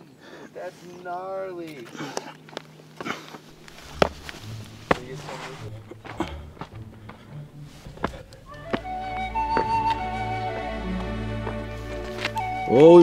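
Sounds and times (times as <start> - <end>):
shoes and hands knocking on rock: 3.0 - 10.6
low background music: 3.5 - 13.0.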